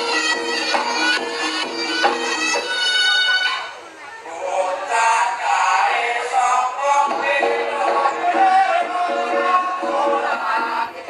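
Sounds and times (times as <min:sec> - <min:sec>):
traditional ensemble music: 0:00.0 - 0:03.8, 0:05.6 - 0:11.0
pitched melody line: 0:06.8 - 0:11.0.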